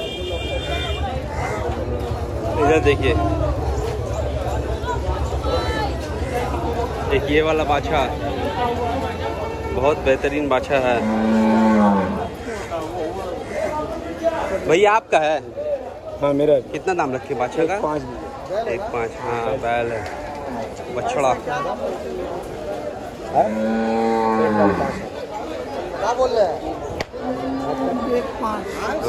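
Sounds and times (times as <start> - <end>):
cow mooing: 10.8 - 12.4, 23.3 - 25.1.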